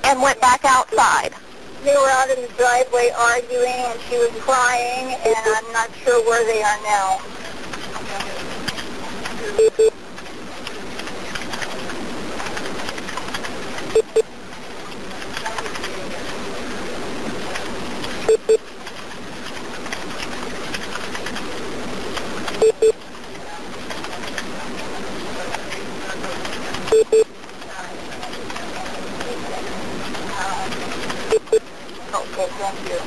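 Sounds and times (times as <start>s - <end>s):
telephone line hiss: 9.5s - 10.0s.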